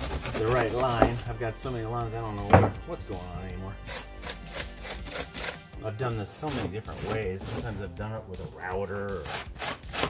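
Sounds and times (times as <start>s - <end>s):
hand tool scraping foam: 0.0s - 1.3s, 3.8s - 5.6s, 6.2s - 7.9s, 9.1s - 10.0s.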